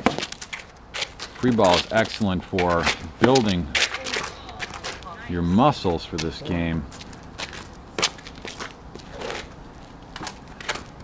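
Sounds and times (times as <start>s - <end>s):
ball bouncing on asphalt: 0.0s - 5.1s
racket hitting ball: 3.7s - 5.3s
sneakers scuffing on asphalt: 6.1s - 11.0s.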